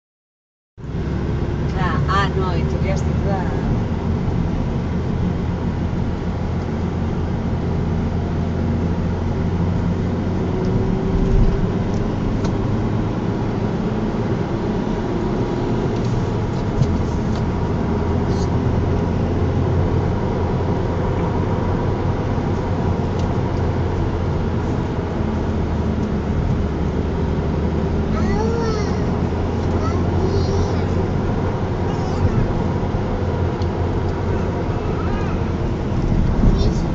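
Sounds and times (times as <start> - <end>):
car engine and tyre drone: 0.8 - 36.9.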